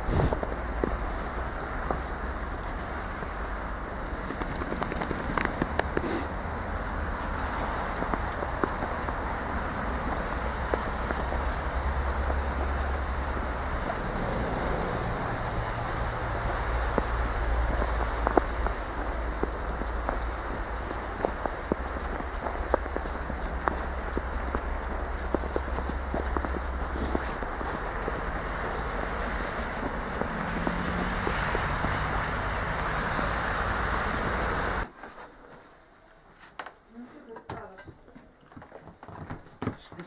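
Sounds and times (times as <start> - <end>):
footsteps crunching in snow: 0.0 - 36.1
city traffic rumble: 0.0 - 40.0.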